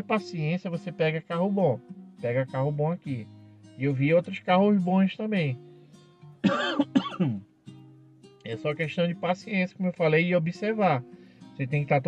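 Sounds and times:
quiet acoustic guitar music: 0.0 - 12.0
man clearing his throat: 6.4 - 7.4.

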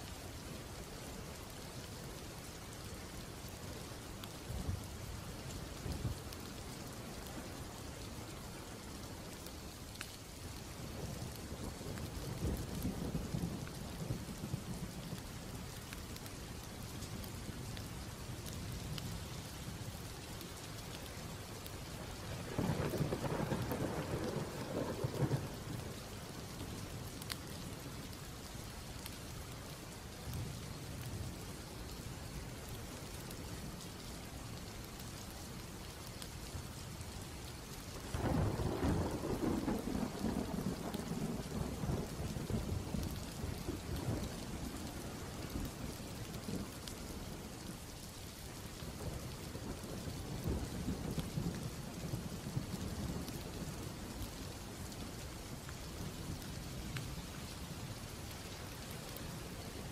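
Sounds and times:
steady rain: 0.0 - 59.9.

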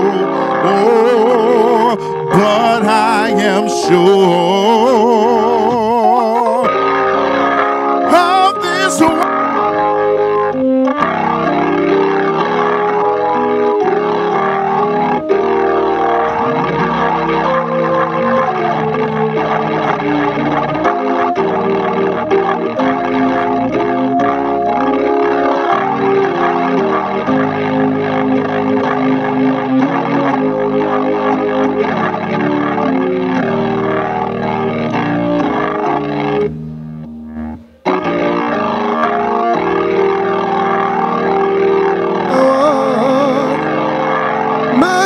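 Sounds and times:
person singing: 0.0 - 6.8, 7.8 - 9.4, 42.3 - 43.8, 44.7 - 45.0
organ playing held chords: 0.0 - 45.0.

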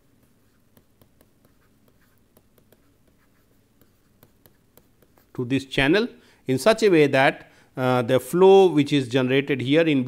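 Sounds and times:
stylus scratching on pen tablet: 0.2 - 5.4.

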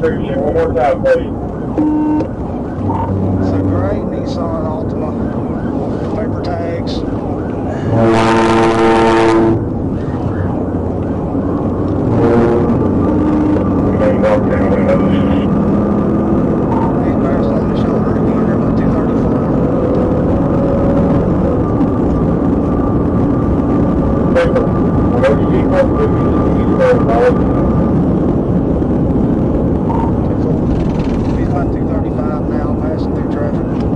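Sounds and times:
road and wind drone: 0.0 - 33.9
police car horn blasts: 1.8 - 2.3, 7.8 - 9.6
car accelerating hard: 7.9 - 33.9.

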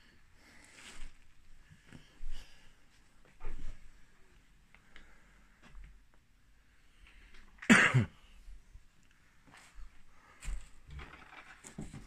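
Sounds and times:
person coughing: 7.6 - 8.2.

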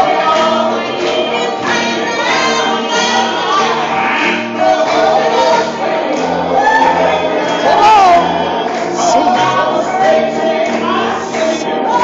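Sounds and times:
accompanying music: 0.0 - 12.0
choir singing gospel: 0.0 - 12.0.

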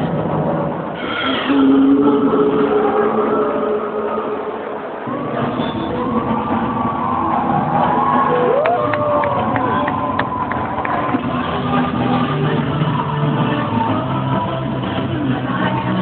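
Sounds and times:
distorted soundtrack over speakers: 0.0 - 16.0.

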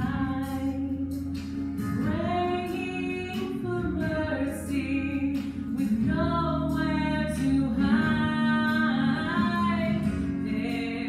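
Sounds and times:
instrumental accompaniment: 0.0 - 11.0
woman singing into microphone: 0.0 - 11.0.

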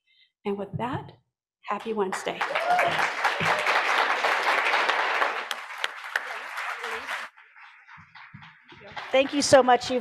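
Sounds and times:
audience applauding: 2.1 - 10.0.

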